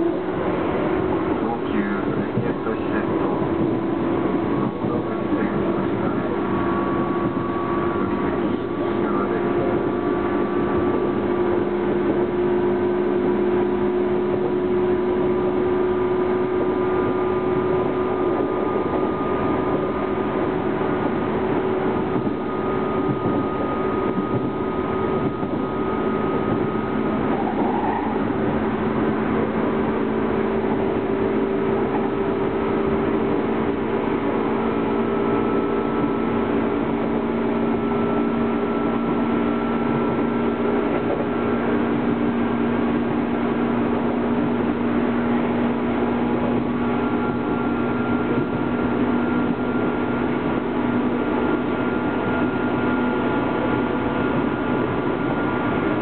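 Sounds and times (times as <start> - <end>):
traction motor whine: 0.0 - 56.0
train wheel and rail rumble: 0.0 - 56.0.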